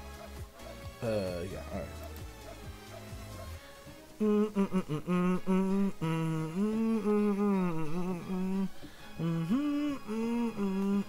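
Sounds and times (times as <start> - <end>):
man humming a tune: 3.9 - 11.0.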